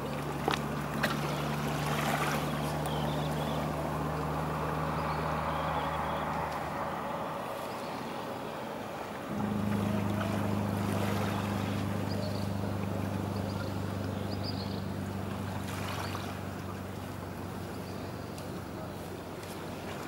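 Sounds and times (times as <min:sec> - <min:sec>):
boat engine droning: 0:00.0 - 0:20.0
higher-pitched engine hum: 0:00.0 - 0:20.0.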